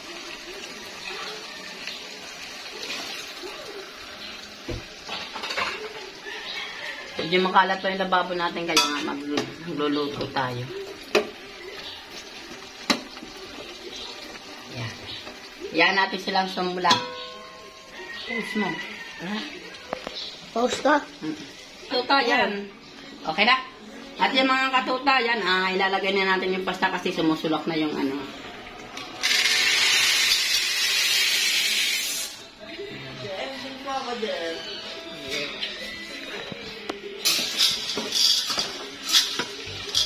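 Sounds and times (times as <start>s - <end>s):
vegetables sizzling: 0.0s - 32.8s, 37.1s - 40.0s
metal spoon knocking against pot: 16.9s - 17.4s.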